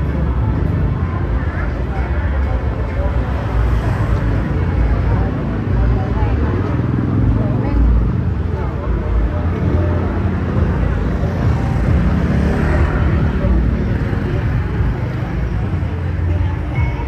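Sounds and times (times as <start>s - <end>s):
motor traffic rumble: 0.0s - 17.0s
people talking indistinctly: 0.0s - 17.0s.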